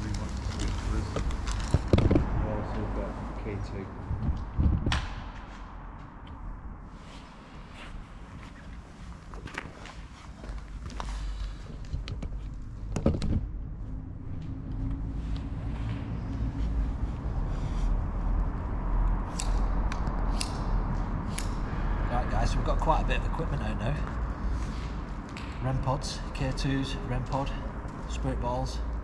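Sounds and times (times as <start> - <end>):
low rumble: 0.0 - 9.3, 10.6 - 26.4.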